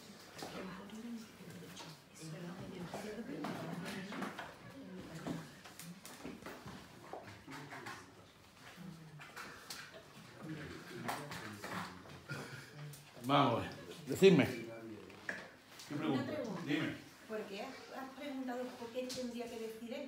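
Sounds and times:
people talking in background: 0.0s - 20.0s.

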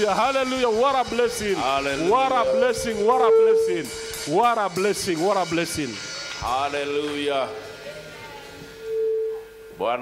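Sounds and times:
man speaking: 0.0s - 7.6s
microphone feedback tone: 1.2s - 4.1s, 8.7s - 9.9s.

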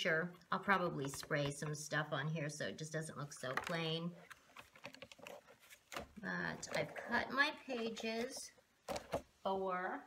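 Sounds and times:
paper pages rustling: 3.4s - 9.3s.

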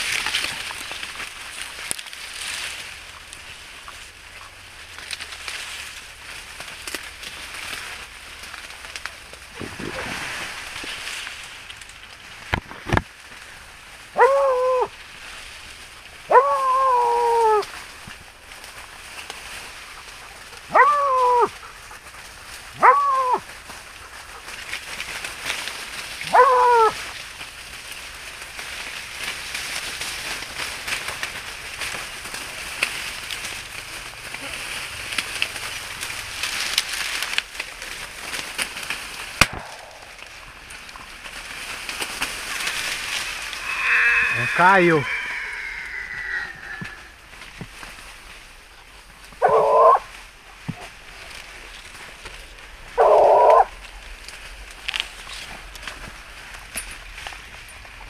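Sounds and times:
dry leaves rustling: 0.0s - 58.0s
dog baying: 14.2s - 14.9s, 16.3s - 17.6s, 20.0s - 22.1s, 22.7s - 24.6s, 26.2s - 27.0s, 49.4s - 50.1s.

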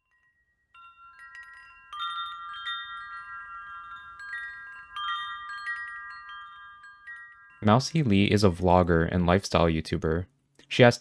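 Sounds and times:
wind chimes ringing: 0.0s - 9.4s.

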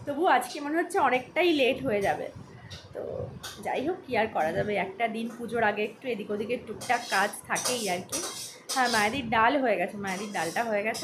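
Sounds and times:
woman speaking: 0.0s - 11.0s
dishes and cutlery clattering: 6.8s - 9.2s, 10.1s - 11.0s.

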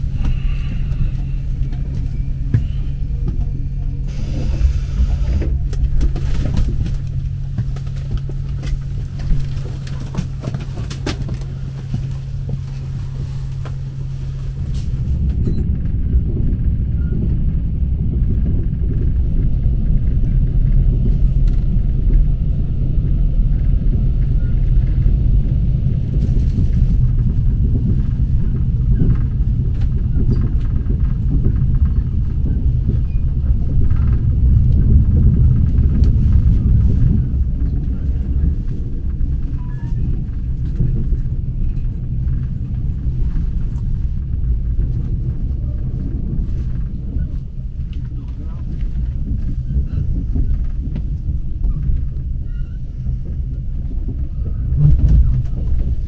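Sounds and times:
faint clicks and rattles: 0.0s - 56.0s
train rumbling along track: 0.0s - 56.0s.

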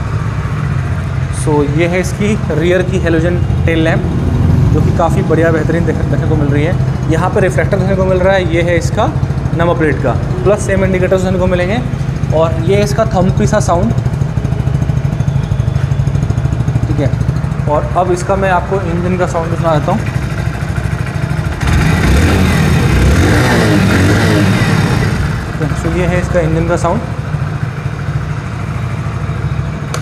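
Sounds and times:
motorcycle engine idling: 0.0s - 30.0s.

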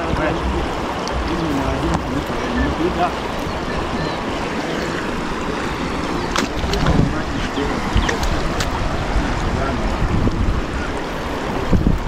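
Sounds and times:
floodwater rushing: 0.0s - 12.0s
splashing footsteps in shallow water: 0.0s - 12.0s
wind buffeting microphone: 0.0s - 12.0s.

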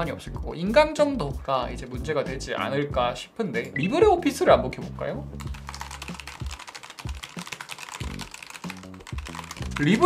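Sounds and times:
background music: 0.0s - 10.0s
fast typing on keyboard: 5.4s - 10.0s.

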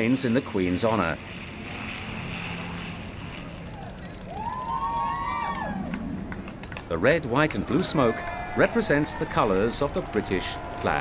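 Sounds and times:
jet aircraft roar overhead: 0.0s - 11.0s.

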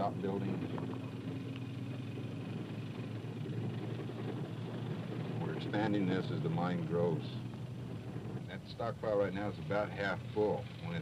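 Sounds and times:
car engine rumble: 0.0s - 11.0s
road noise on unpaved road: 0.0s - 11.0s.

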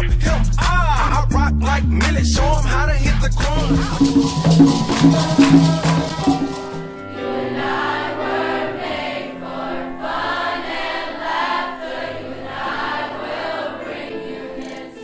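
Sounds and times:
hand drum strikes: 3.6s - 7.0s
choir singing: 3.6s - 15.0s.

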